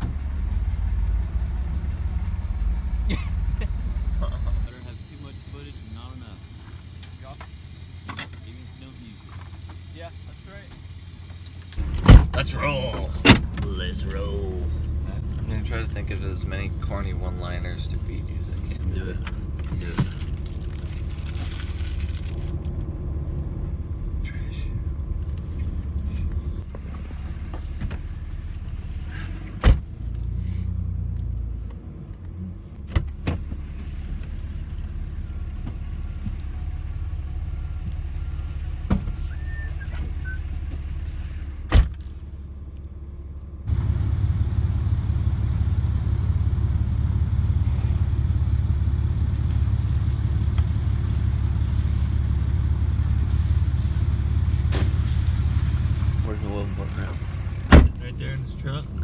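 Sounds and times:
truck engine and road rumble: 0:00.0 - 0:59.0.

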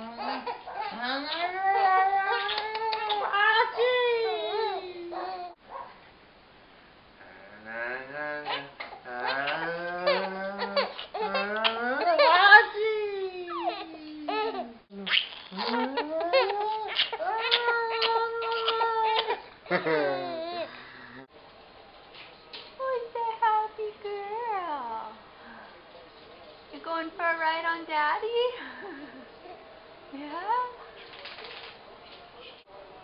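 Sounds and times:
low room noise: 0:00.0 - 0:33.0
baby squealing: 0:00.2 - 0:05.5, 0:08.4 - 0:12.8, 0:13.5 - 0:19.4
lower voice: 0:07.2 - 0:16.4
man's low playful vocal sounds: 0:07.2 - 0:18.9.

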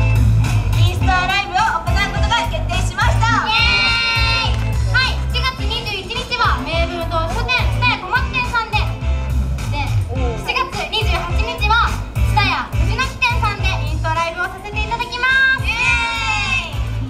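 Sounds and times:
background music with bass beat: 0:00.0 - 0:17.0
women talking into microphones: 0:00.8 - 0:09.0, 0:09.6 - 0:16.7.

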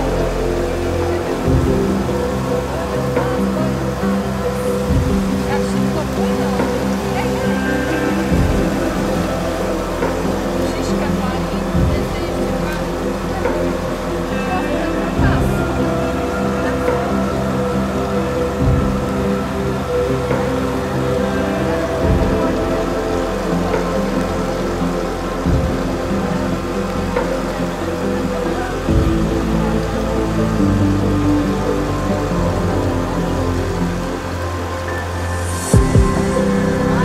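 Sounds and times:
music of sustained chords: 0:00.0 - 0:37.0.

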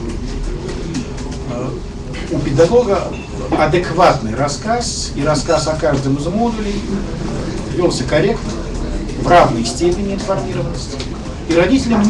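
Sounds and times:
man speaking: 0:01.5 - 0:12.0.

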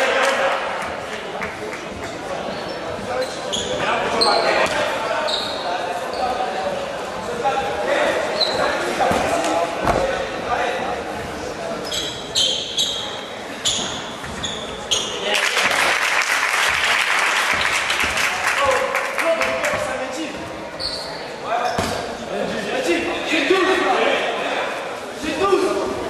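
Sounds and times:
crowd noise: 0:00.0 - 0:26.0
sneakers squeaking on wooden court: 0:02.0 - 0:06.4, 0:08.4 - 0:10.1, 0:11.8 - 0:15.3, 0:17.5 - 0:18.2, 0:19.4 - 0:22.2
sharp claps: 0:15.3 - 0:19.8
basketball bouncing: 0:17.5 - 0:18.3.

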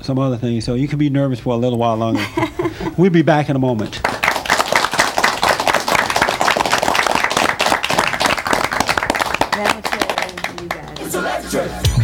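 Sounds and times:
audience applauding: 0:04.0 - 0:11.5
music: 0:10.4 - 0:12.0.

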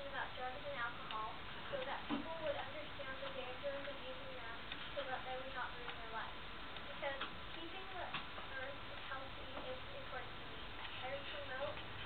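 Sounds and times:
girl reading aloud: 0:00.0 - 0:11.9.

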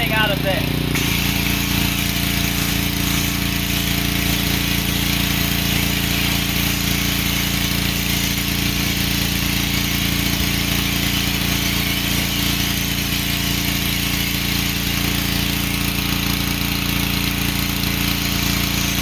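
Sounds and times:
pressure washer humming: 0:00.0 - 0:19.0
water jet spraying: 0:00.0 - 0:19.0.

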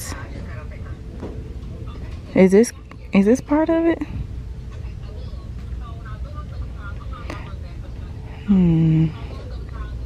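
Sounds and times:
faint distant voices: 0:00.0 - 0:10.0
steady low rumble: 0:00.0 - 0:10.0.

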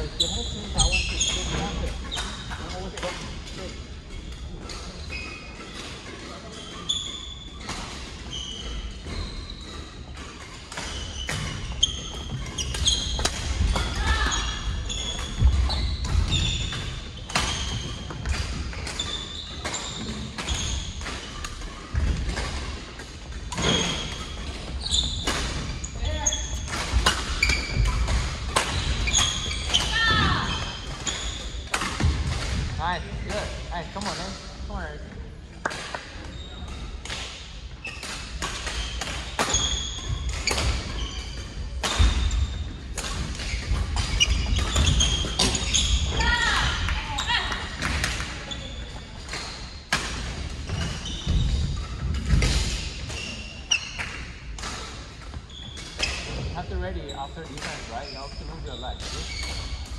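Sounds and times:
sneakers squeaking on floor: 0:00.0 - 0:59.9
racket hitting shuttlecock: 0:26.6 - 0:29.9.

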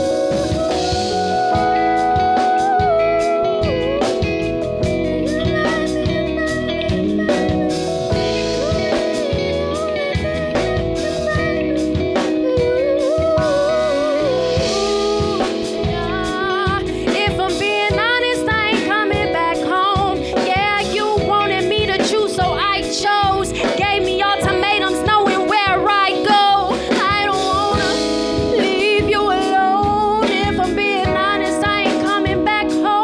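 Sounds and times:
bass guitar: 0:00.0 - 0:33.0
drum kit beat: 0:00.0 - 0:33.0
electric guitar: 0:00.0 - 0:33.0
keyboard: 0:00.0 - 0:33.0
person singing: 0:00.0 - 0:33.0.

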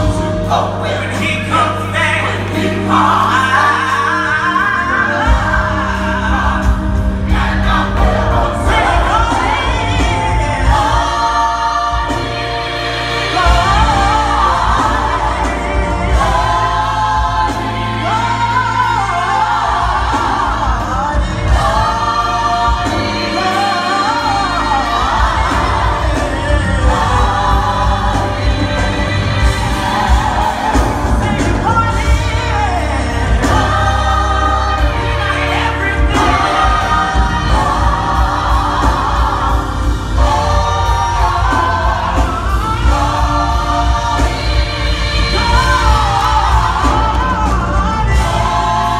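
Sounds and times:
gospel choir singing: 0:00.0 - 0:48.9
instrumental backing: 0:00.0 - 0:48.9.

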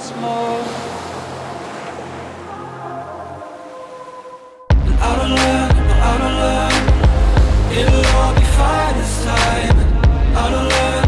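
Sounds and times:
ocean surf on beach: 0:00.0 - 0:04.6
music with low bass notes: 0:04.7 - 0:11.0.

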